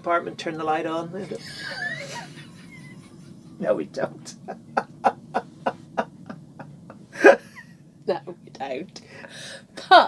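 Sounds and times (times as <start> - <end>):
women laughing: 1.2 - 3.5, 4.3 - 7.8.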